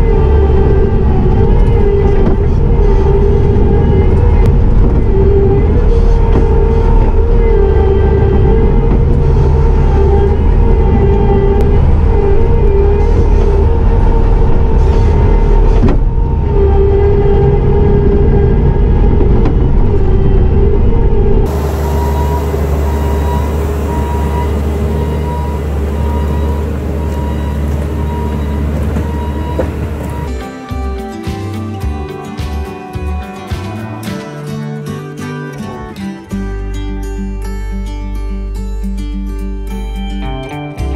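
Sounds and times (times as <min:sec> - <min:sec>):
diesel engine working hard: 0:00.0 - 0:31.0
hydraulics whining: 0:00.0 - 0:31.7
regular beeping: 0:21.5 - 0:30.4.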